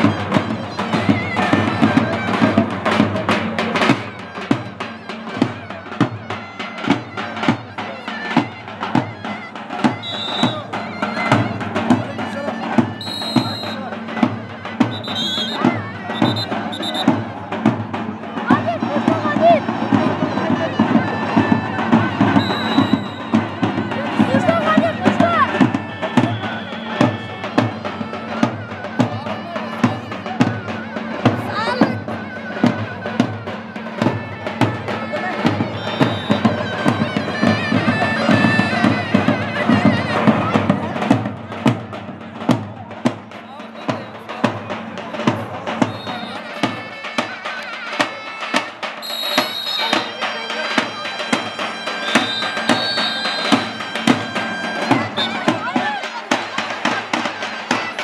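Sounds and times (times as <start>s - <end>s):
shrill zurna melody: 0.0s - 17.6s, 18.4s - 40.6s, 45.7s - 58.0s
big drum strokes: 0.0s - 58.0s.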